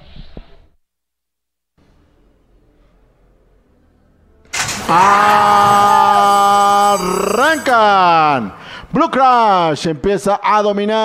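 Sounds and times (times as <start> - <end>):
starting gate doors clanging open: 4.5 - 8.5
man shouting: 4.7 - 8.6.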